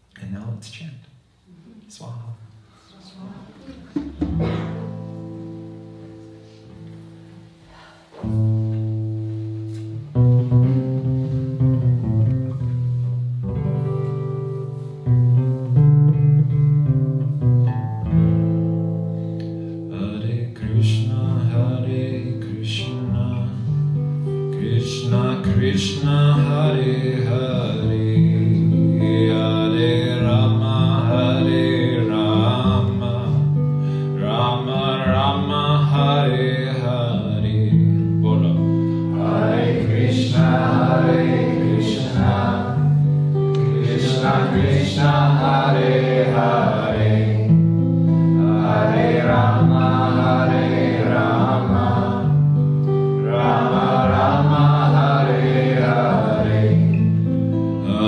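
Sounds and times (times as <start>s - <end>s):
acoustic guitar chords: 3.7s - 58.0s.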